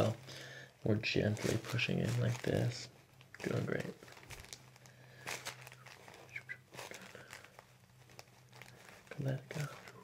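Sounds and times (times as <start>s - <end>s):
faint steady hum: 0.0s - 10.0s
paper crinkling and rustling: 1.0s - 10.0s.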